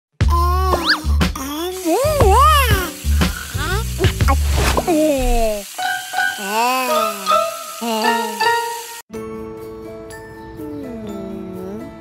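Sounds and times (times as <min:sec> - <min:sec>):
cartoon voice sounds: 0:00.3 - 0:05.7, 0:06.4 - 0:08.4
tap water running into sink: 0:01.8 - 0:06.3.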